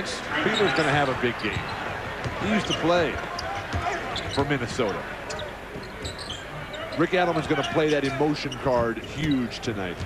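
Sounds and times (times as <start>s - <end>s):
sneaker squeaks: 0.4s - 10.0s.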